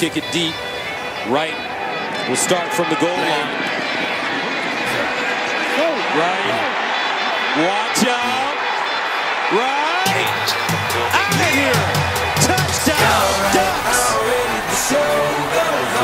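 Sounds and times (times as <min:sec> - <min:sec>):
excited commentator speaking: 0:00.0 - 0:03.8, 0:04.8 - 0:16.0
hip-hop pop music: 0:00.0 - 0:16.0
stadium crowd noise: 0:00.0 - 0:16.0.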